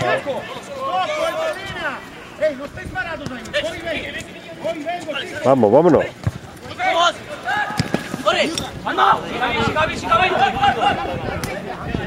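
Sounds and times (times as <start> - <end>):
men shouting calls: 0.0 - 11.8.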